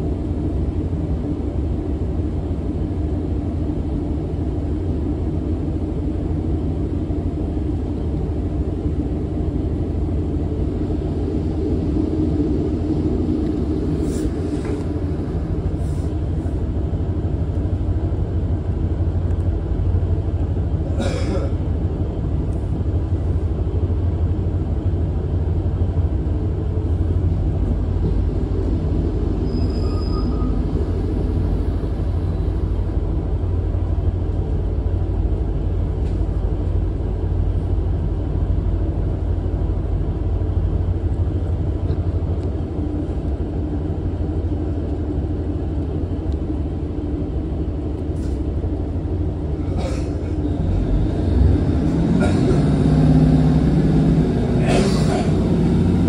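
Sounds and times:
train wheels on rails: 0.0 - 56.0.

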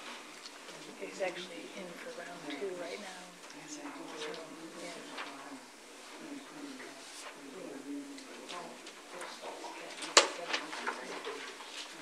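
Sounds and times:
murmur of voices: 0.7 - 12.0.

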